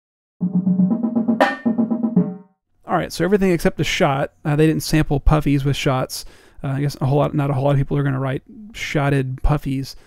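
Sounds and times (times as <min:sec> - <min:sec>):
snare drum: 0:00.4 - 0:02.4
tenor drums played with mallets: 0:00.4 - 0:02.4
sharp accented drum shot: 0:00.4 - 0:02.5.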